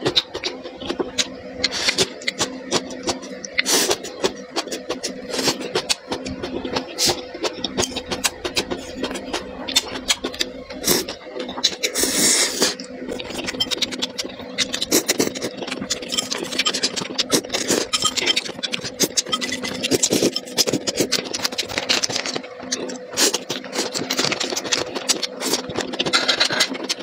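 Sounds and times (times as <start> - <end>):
slurping noodles: 0.0 - 27.0
steady low hum: 0.0 - 27.0
wet chewing and mouth clicks: 0.0 - 27.0.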